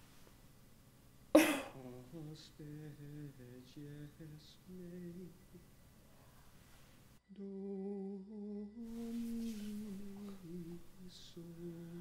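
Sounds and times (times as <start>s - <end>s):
person humming a melody: 7.3s - 12.0s.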